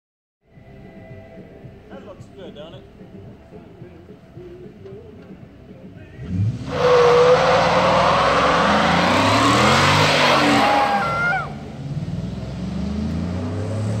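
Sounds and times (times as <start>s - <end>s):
engine revving: 6.2s - 14.0s
tire screeching on pavement: 6.2s - 14.0s.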